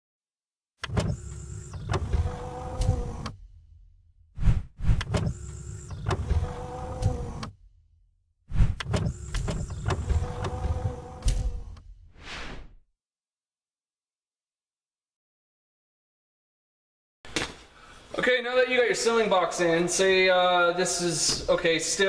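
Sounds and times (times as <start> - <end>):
motorised whir: 0.8 - 3.6, 4.8 - 7.7, 8.8 - 11.8
mechanical clunk: 8.8 - 11.8.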